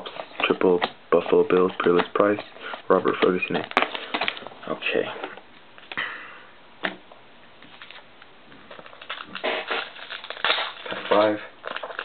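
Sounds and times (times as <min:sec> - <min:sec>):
foil wrapper crinkling: 0:08.7 - 0:12.0.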